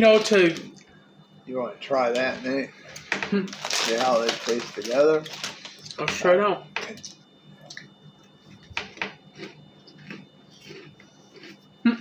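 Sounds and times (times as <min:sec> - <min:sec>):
chewing crunchy snacks: 0:03.0 - 0:06.0, 0:06.8 - 0:12.0.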